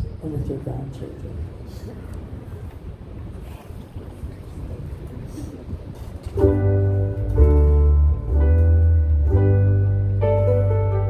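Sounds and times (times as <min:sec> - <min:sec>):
wind buffeting microphone: 0:00.0 - 0:09.4.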